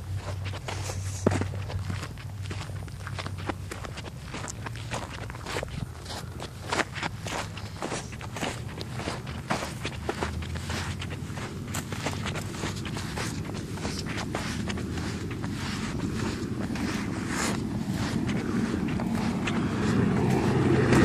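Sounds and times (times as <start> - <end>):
footsteps walking: 0.0 - 21.0
low steady hum: 0.0 - 21.0
rustles: 0.0 - 21.0.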